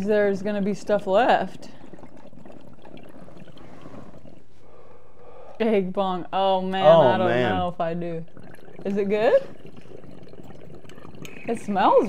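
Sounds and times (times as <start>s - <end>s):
water pipe bubbling: 0.0s - 12.0s.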